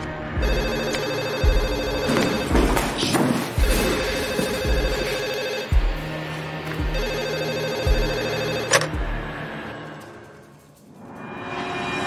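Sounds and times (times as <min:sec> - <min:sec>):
landline telephone ringing: 0:00.4 - 0:03.0, 0:03.6 - 0:06.0, 0:06.8 - 0:09.0.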